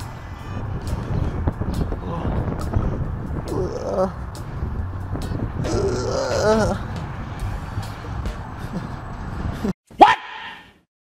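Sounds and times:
low street rumble: 0.0s - 9.7s.

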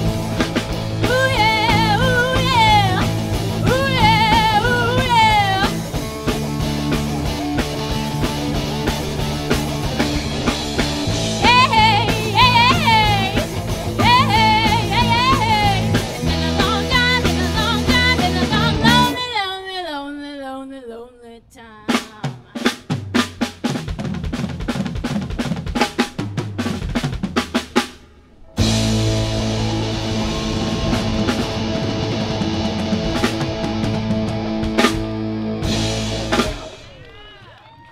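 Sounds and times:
drum fill: 0.0s - 19.1s
live rock band: 0.0s - 19.2s, 22.0s - 37.2s
cymbals crashing: 27.4s - 37.0s.

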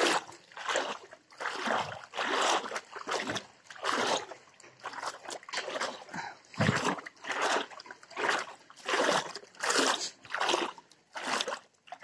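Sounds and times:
wading steps splashing in water: 0.0s - 12.0s.

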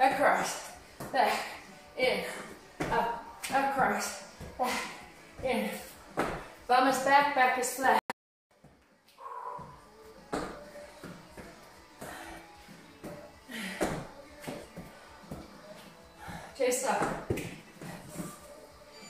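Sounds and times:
feet thudding on rubber matting: 2.7s - 6.6s, 9.5s - 18.6s.

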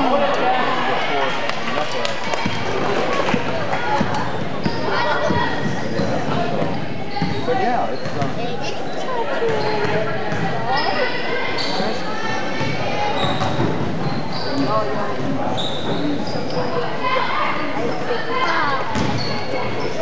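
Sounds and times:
sneaker squeaks: 4.2s - 17.0s, 17.9s - 20.0s.

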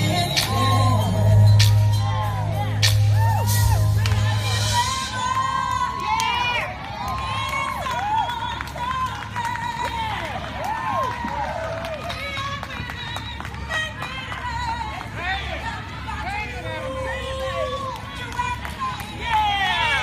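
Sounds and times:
woman singing jazz: 0.0s - 5.4s.

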